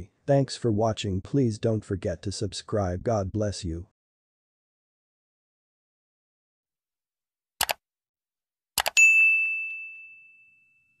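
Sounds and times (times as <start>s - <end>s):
notification bell ding: 8.9s - 11.0s.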